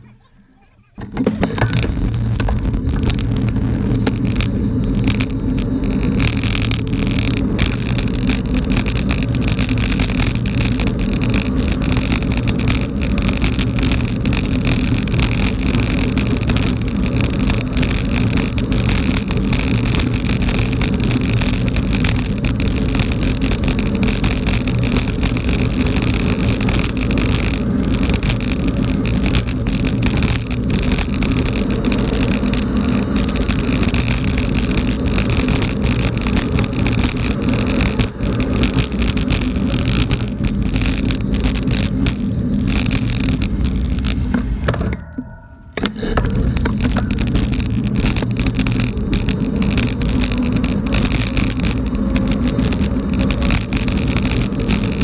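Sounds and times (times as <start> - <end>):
bike frame rattling: 0.9 - 55.0
bike tyres on gravel: 0.9 - 55.0.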